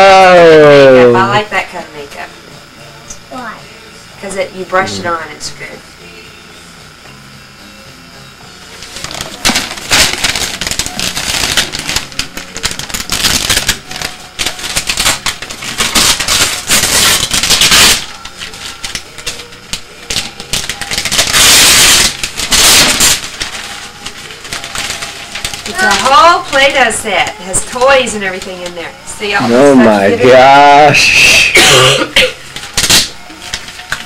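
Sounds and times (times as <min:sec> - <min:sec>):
wrapping paper tearing and crinkling: 0:08.8 - 0:34.0.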